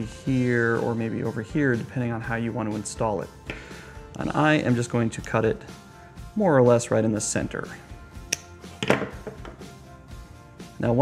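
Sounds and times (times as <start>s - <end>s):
soft background music: 0.0s - 11.0s
metal tool knocking on table: 8.8s - 9.7s.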